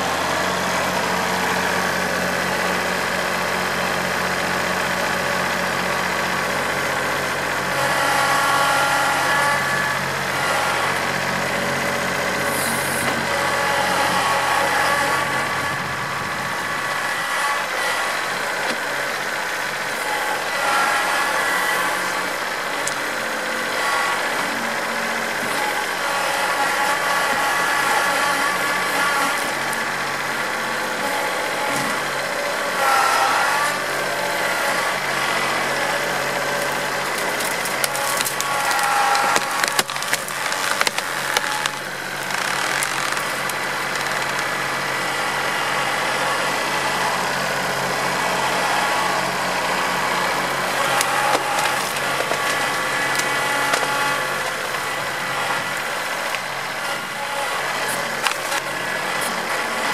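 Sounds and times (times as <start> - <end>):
tractor engine running under load: 0.0 - 59.9.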